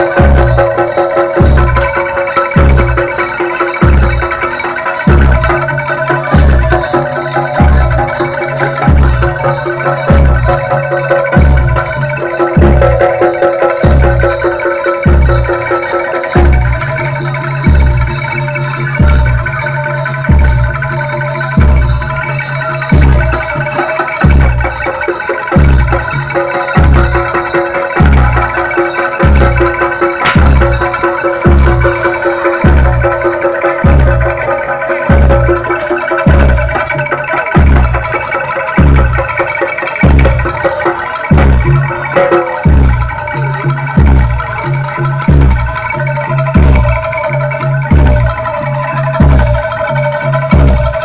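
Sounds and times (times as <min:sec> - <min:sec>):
deep low drum beat: 0:00.0 - 0:37.0, 0:40.0 - 0:45.8
gamelan metal keys melody: 0:00.0 - 0:51.0
metallophones ringing: 0:00.0 - 0:51.0.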